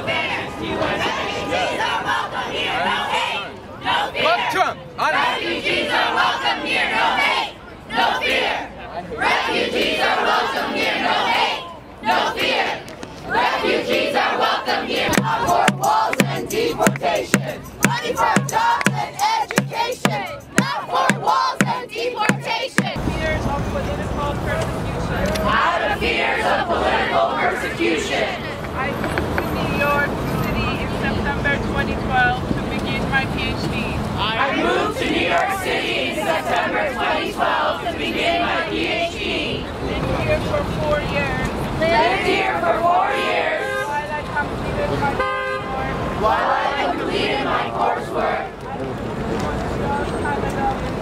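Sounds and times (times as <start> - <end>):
crowd chanting and shouting: 0.0 - 51.0
street noise: 0.0 - 51.0
plastic bucket drumming: 15.1 - 23.0
car horn toot: 43.1 - 44.1, 45.0 - 46.0.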